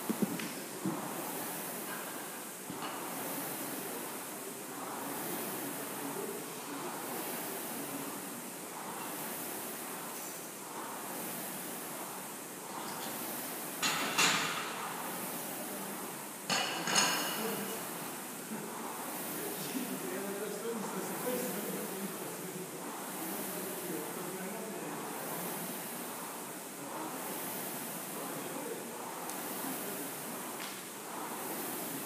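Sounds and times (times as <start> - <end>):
rowing machine flywheel whooshing: 0.0 - 32.0.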